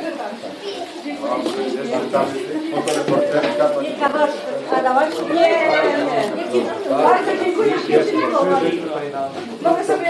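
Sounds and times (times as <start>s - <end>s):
indoor chatter of voices: 0.0s - 10.0s.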